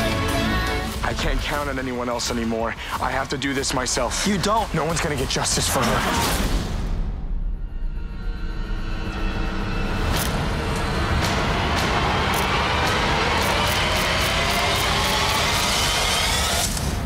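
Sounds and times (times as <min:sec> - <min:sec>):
trailer score rising swell: 0:00.0 - 0:17.0.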